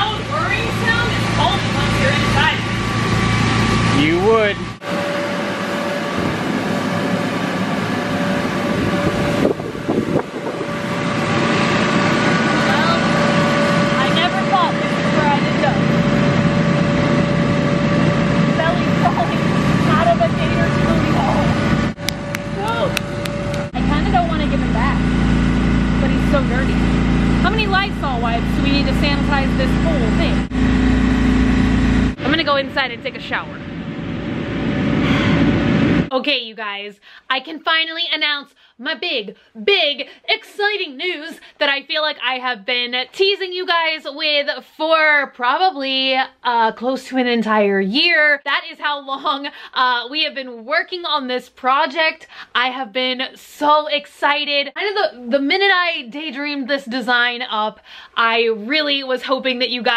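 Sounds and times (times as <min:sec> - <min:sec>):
electric blower humming: 0:00.0 - 0:36.1.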